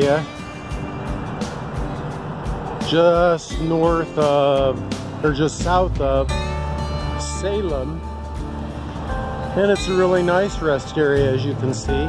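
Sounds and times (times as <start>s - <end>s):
faint background music: 0.0s - 12.0s
road traffic rushing: 0.0s - 12.0s.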